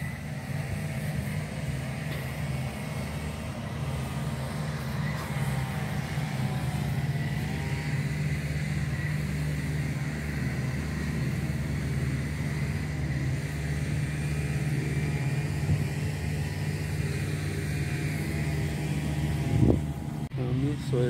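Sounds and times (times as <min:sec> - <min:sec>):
low engine-like drone: 0:00.0 - 0:21.0.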